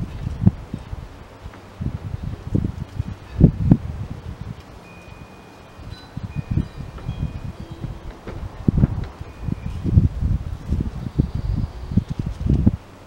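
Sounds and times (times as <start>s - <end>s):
wind gusting on microphone: 0.0s - 13.0s
thin high ringing tones: 3.0s - 12.2s.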